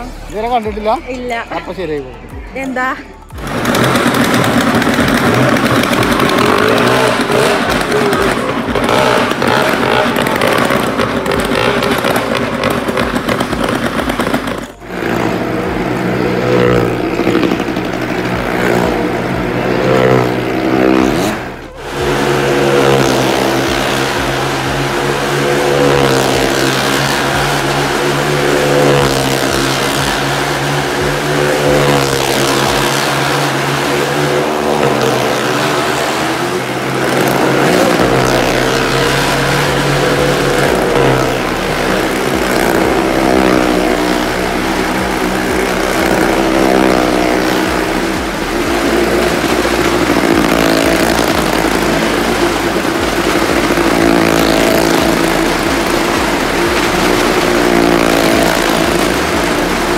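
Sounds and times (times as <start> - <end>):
motorcycle engines running hard: 0.0 - 59.9.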